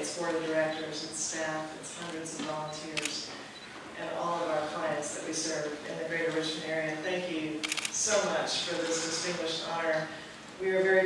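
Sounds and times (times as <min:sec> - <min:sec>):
person speaking: 0:00.0 - 0:03.4
camera shutter clicks: 0:07.6 - 0:08.0.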